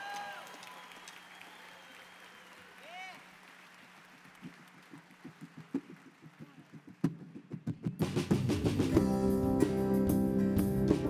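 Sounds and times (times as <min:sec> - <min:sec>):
live band playing softly: 0:07.1 - 0:11.0.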